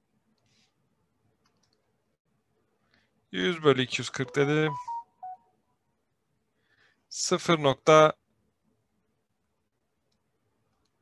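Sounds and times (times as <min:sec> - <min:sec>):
short electronic beep: 0:04.3 - 0:05.5.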